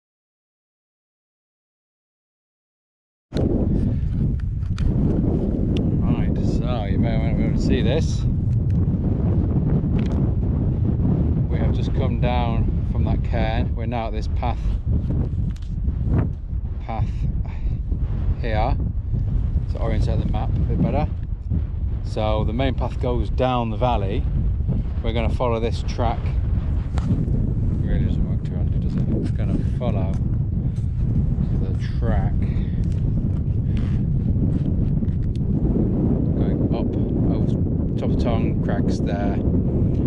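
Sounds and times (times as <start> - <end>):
wind buffeting microphone: 3.3 - 40.0.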